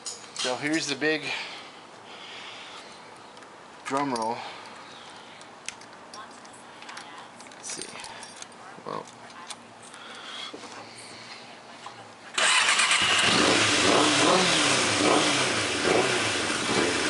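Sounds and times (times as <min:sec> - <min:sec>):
motorcycle engine starting and revving: 0:12.3 - 0:17.0.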